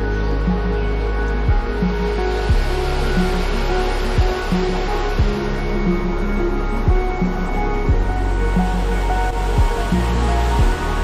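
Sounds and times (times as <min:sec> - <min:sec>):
low beat: 0:00.0 - 0:11.0
sustained tones: 0:00.0 - 0:11.0.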